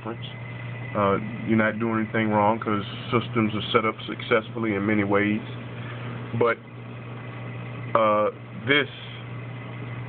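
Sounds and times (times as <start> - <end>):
aquarium equipment humming: 0.0 - 10.0.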